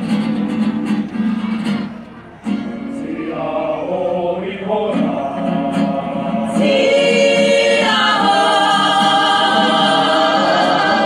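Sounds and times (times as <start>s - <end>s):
group singing held notes: 2.8s - 11.0s.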